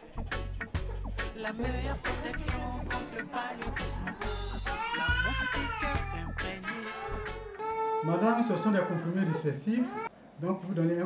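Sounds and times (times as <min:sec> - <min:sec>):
background music with steady beat: 0:00.0 - 0:07.7
baby crying: 0:04.0 - 0:10.1.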